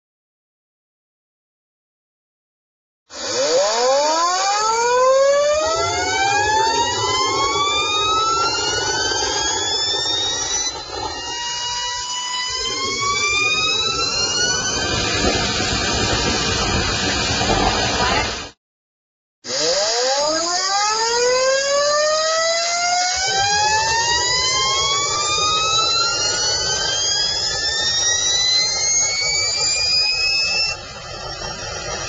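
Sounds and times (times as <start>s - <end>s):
jet turbine whine rising: 3.1s - 18.6s, 19.5s - 32.0s
turbine rushing roar: 3.1s - 18.6s, 19.5s - 32.0s.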